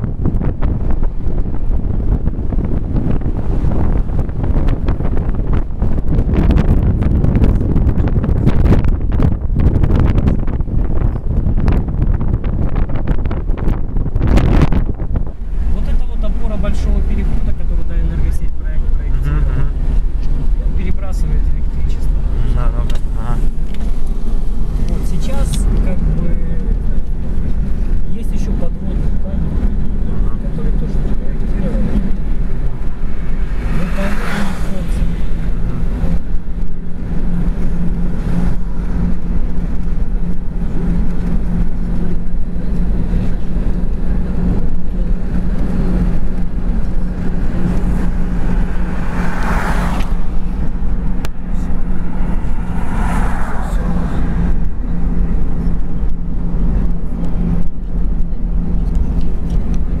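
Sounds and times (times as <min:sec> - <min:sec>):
car road and engine noise: 0:00.0 - 1:00.0
whooshing swells: 0:31.6 - 1:00.0.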